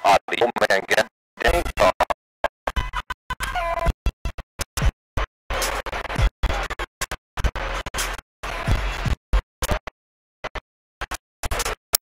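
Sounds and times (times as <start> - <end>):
radio static bursts: 0.0 - 2.2.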